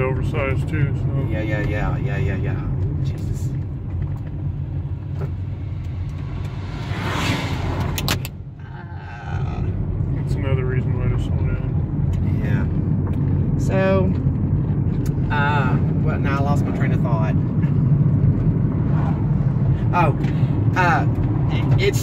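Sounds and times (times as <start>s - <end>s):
road and engine rumble inside car: 0.0s - 22.0s
truck passing close by: 4.4s - 10.1s.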